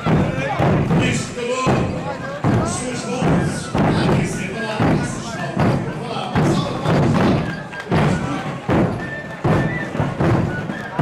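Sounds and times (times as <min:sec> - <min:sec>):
bass drums beating: 0:00.0 - 0:11.0
crowd voices: 0:00.0 - 0:11.0.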